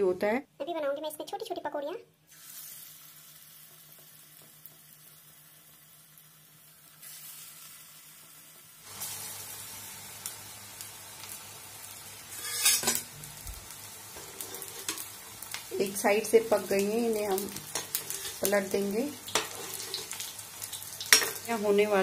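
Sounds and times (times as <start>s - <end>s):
food deep-frying in hot oil: 2.3s - 22.0s.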